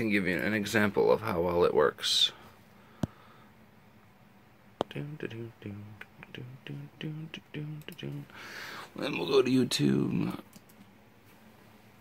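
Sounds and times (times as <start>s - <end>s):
computer mouse clicks: 10.4s - 10.9s.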